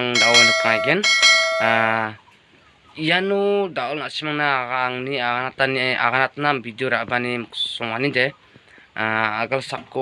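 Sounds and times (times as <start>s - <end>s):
man talking: 0.0s - 2.2s, 3.0s - 8.4s, 9.0s - 10.0s
notification bell chime: 0.2s - 1.9s.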